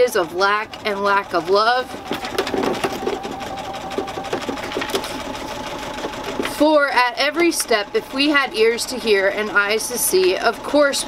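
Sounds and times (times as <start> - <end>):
exercise machine whirring: 0.0 - 11.0
book pages turning: 1.9 - 6.6.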